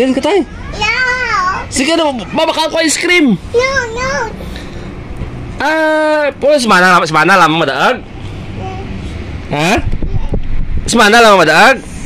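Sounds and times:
young child vocalizing: 8.5 - 9.0.

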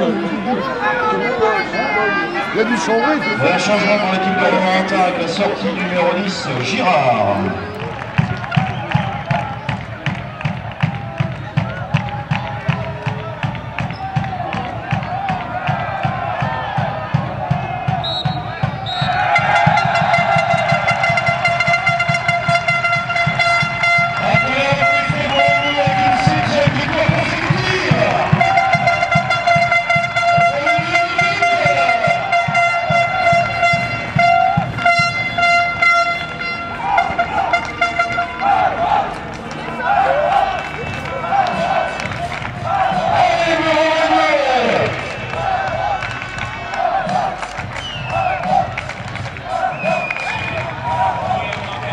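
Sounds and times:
crowd chanting: 0.0 - 51.9
drum beating: 6.5 - 51.9
horn blown in long notes: 17.9 - 41.9.

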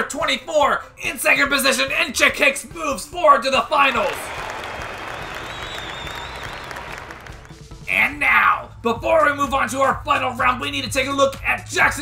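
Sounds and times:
crowd applause and cheering: 3.9 - 7.8
faint high whistle: 5.1 - 7.1.

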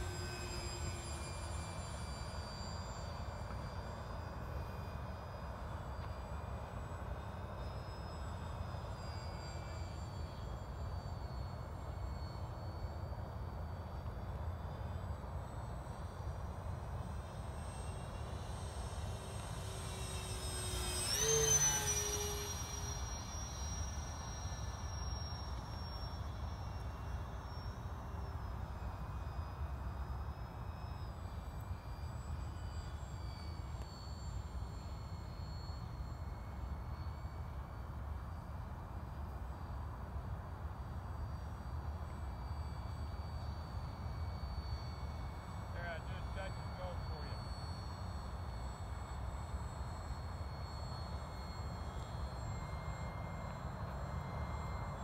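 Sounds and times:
model airplane motor whine: 0.0 - 55.0.

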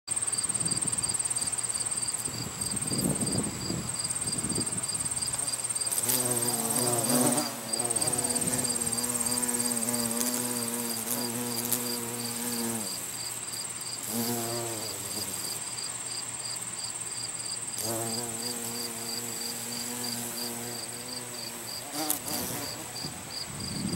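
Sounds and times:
insects trilling: 0.1 - 23.9
bee buzzing in flight: 1.3 - 15.7, 17.7 - 23.9.

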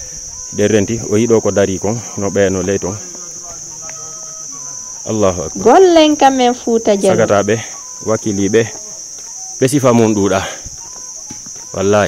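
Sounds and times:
high-pitched insect drone: 0.0 - 12.0
person calling out loudly: 5.6 - 7.5.

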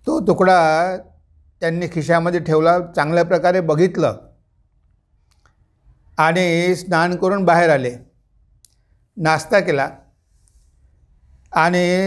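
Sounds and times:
man talking: 0.0 - 4.3, 6.2 - 8.0, 9.2 - 10.0, 11.5 - 12.0
faint clicks: 4.7 - 5.6.

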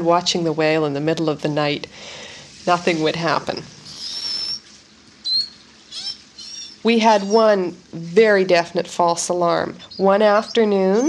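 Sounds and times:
beluga whale whistles: 3.8 - 7.5.

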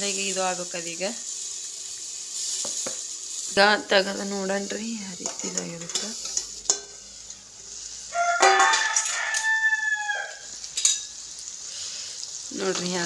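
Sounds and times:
food sizzling in a pan: 0.0 - 13.0
utensil clinking on metal pan: 5.2 - 7.0, 8.4 - 9.5, 10.8 - 11.1
rooster crowing: 8.1 - 10.5.

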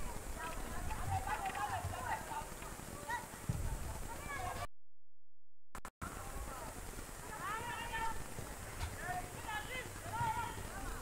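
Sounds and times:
distant shouting and calls: 0.0 - 4.7, 6.2 - 11.0
open-air background: 0.0 - 4.7, 5.8 - 11.0
dull low thump: 3.5 - 3.8.

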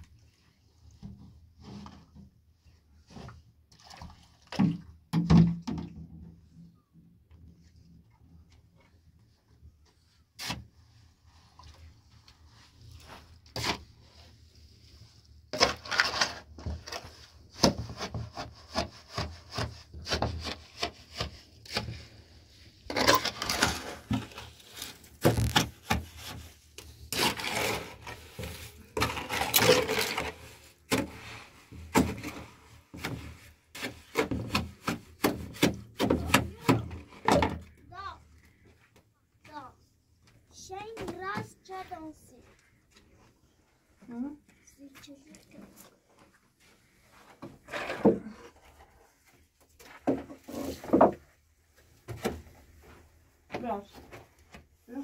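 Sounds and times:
tool scraping in metal basin: 27.1 - 31.4.

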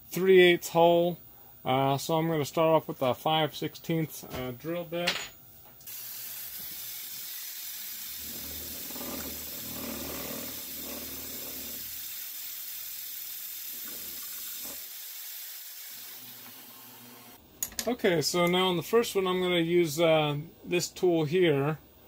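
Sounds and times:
coolant nozzle hissing: 5.9 - 16.5
milling machine drilling steel: 8.2 - 12.0.

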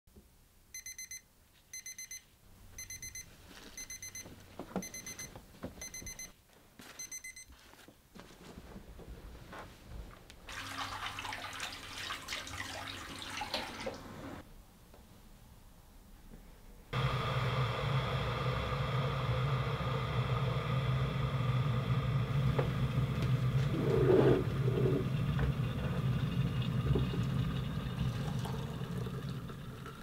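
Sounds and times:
digital alarm clock beeping: 0.8 - 1.2, 1.8 - 2.2, 2.8 - 3.2, 3.8 - 4.2, 4.8 - 6.3, 7.0 - 7.4
rustling and knocks of movement: 3.4 - 10.5
tap running into a sink: 24.9 - 29.6.

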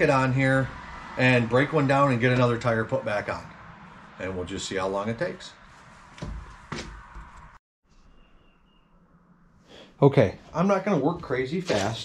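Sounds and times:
dull thuds: 6.2 - 7.4.

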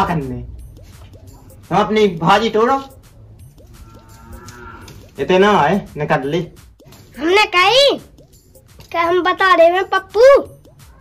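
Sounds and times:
cow mooing: 3.7 - 5.1.

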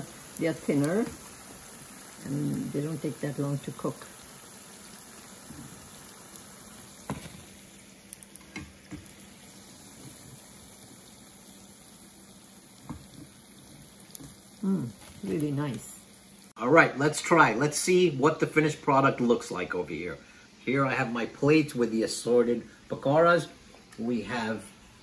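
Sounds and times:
deep-frying sizzle: 0.0 - 25.0.

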